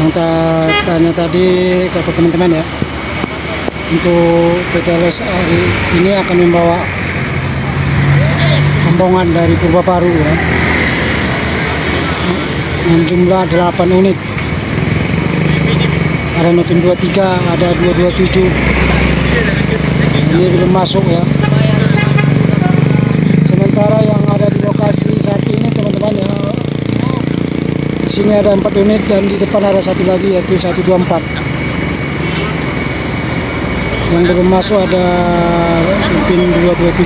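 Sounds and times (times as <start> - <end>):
vehicle engine running: 0.0 - 37.0.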